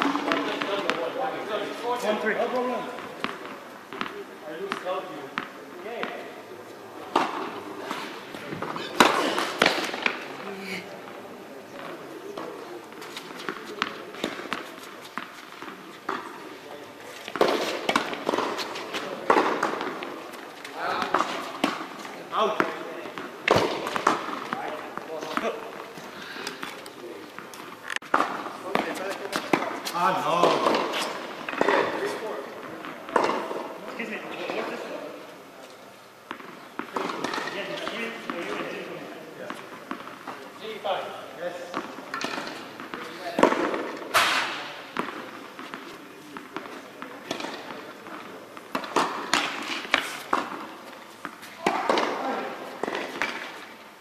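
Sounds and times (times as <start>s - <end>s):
tennis balls struck by rackets: 0.0s - 1.2s, 2.4s - 6.4s, 7.0s - 10.4s, 11.0s - 34.7s, 36.2s - 41.0s, 41.7s - 53.7s
tennis balls bouncing on hard court: 3.0s - 6.3s, 7.1s - 10.4s, 13.4s - 16.5s, 17.2s - 25.9s, 27.3s - 33.7s, 36.3s - 38.7s, 41.7s - 44.2s, 44.9s - 53.6s.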